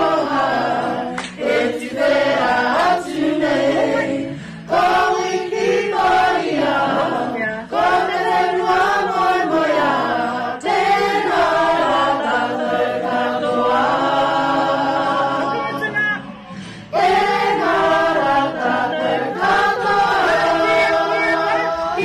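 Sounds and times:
group of voices singing: 0:00.0 - 0:22.0.

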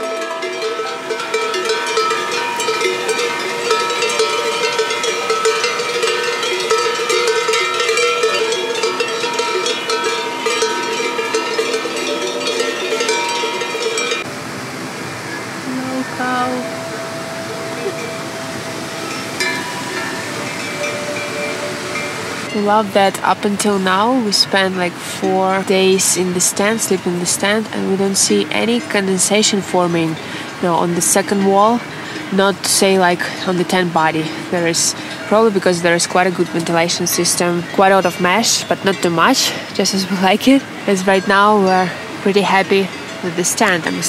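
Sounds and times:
cow bells clanking: 0:00.0 - 0:14.4, 0:16.6 - 0:44.0
mountain river rushing: 0:00.0 - 0:44.0.

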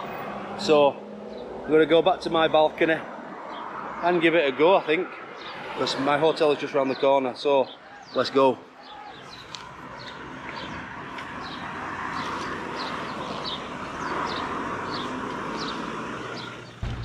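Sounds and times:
street traffic noise: 0:00.0 - 0:17.0.

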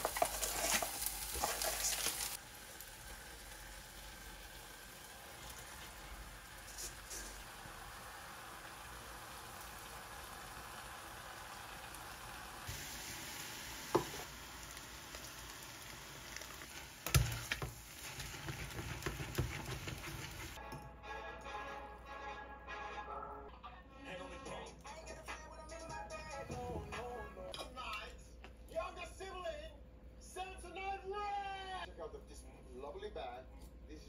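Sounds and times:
food sizzling in saucepan: 0:00.0 - 0:20.6
background music: 0:20.6 - 0:27.7.

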